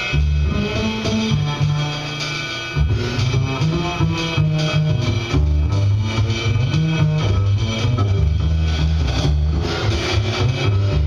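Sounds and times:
drums and cymbals: 0:00.0 - 0:11.0
plucked double bass: 0:00.0 - 0:11.0.

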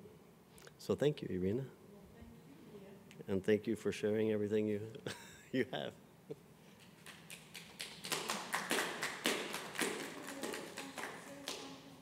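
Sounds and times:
hands clapping: 0:06.8 - 0:11.9.

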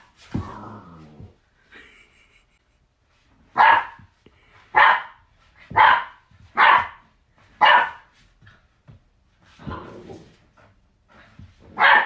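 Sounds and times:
puppy barking: 0:03.6 - 0:04.0, 0:04.8 - 0:07.0, 0:07.6 - 0:08.1, 0:11.7 - 0:12.0.

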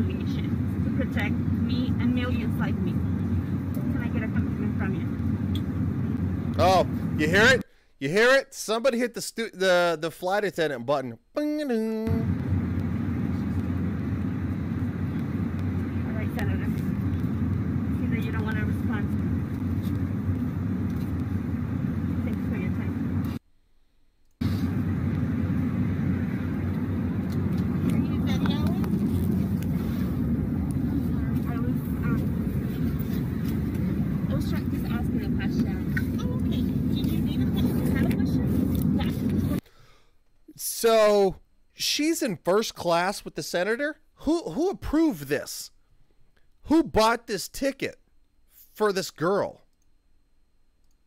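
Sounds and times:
airliner cabin roar: 0:00.0 - 0:07.6, 0:12.1 - 0:23.4, 0:24.4 - 0:39.6
faint passengers' voices: 0:26.5 - 0:39.6.

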